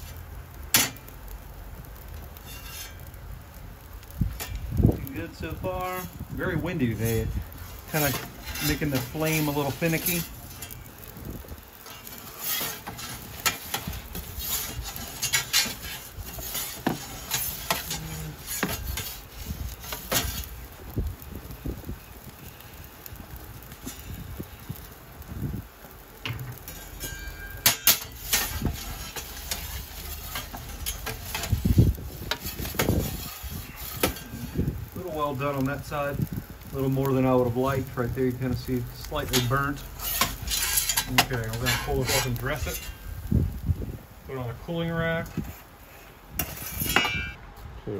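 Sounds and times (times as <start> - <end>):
metal pizza peel scraping stone: 2.2 - 3.2, 4.3 - 20.6, 26.3 - 34.8, 37.6 - 43.2, 45.3 - 47.4
wind on microphone: 4.1 - 8.4, 10.8 - 11.7, 17.9 - 25.8, 31.0 - 40.6, 41.7 - 44.3.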